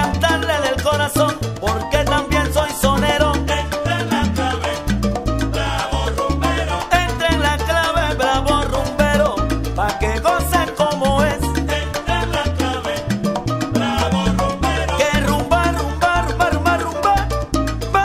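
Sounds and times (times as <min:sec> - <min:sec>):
salsa music: 0:00.0 - 0:18.0.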